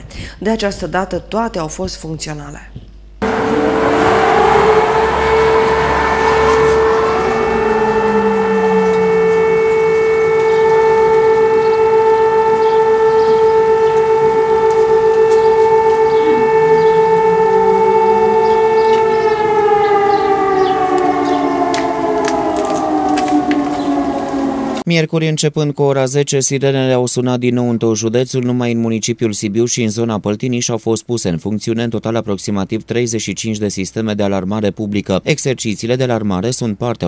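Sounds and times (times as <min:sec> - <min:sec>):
warning sirens wailing: 0:03.2 - 0:24.9.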